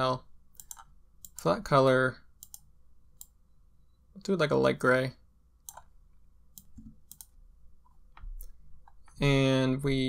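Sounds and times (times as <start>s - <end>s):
mouse and keyboard clicks: 0.6s - 1.5s, 2.4s - 3.4s, 6.6s - 9.2s.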